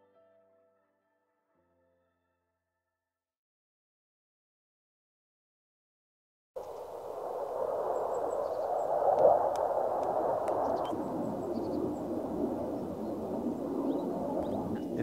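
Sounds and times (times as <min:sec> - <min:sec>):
distant jet rumbling rush: 0:06.7 - 0:15.0.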